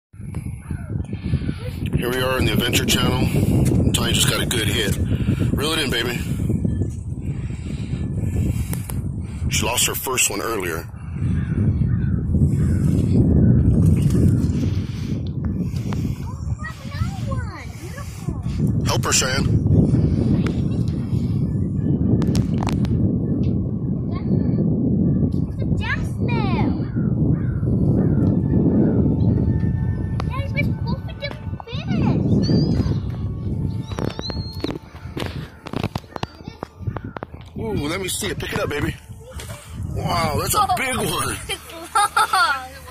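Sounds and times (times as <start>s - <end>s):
wind buffeting microphone: 0.1s - 42.9s
children squealing and calling: 11.4s - 18.6s, 30.3s - 37.4s.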